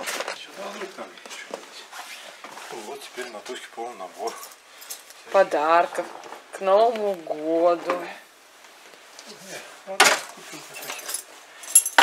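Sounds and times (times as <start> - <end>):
keys clattering: 10.7 - 12.0
metallic jingle: 10.7 - 12.0.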